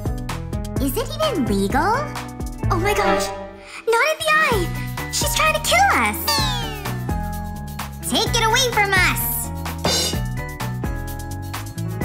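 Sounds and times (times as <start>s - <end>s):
background music with bass line: 9.5s - 12.0s.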